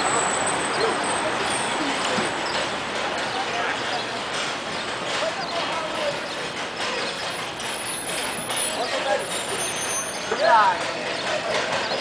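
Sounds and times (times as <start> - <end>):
indistinct voices: 0.0 - 12.0.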